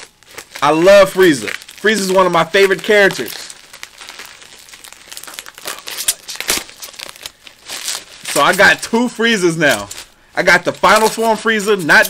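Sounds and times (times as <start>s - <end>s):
packaging crinkling and rustling: 0.0s - 12.0s
sharp packaging crackles: 0.0s - 12.0s.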